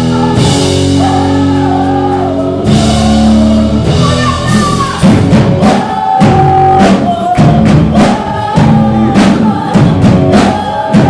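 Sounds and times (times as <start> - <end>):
drum and cymbal hits: 0.0 - 11.0
live rock band: 0.0 - 11.0.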